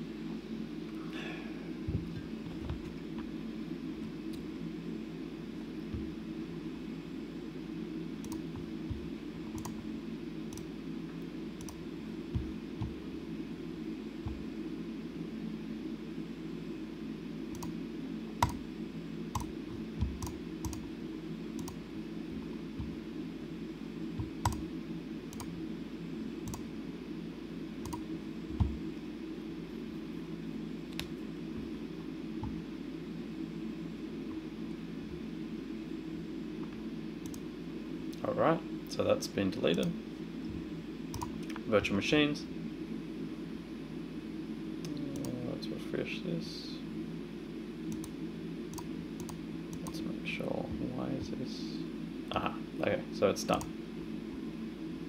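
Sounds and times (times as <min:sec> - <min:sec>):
low room hum: 0:00.0 - 0:55.0
mouse and keyboard clicks: 0:24.4 - 0:24.6.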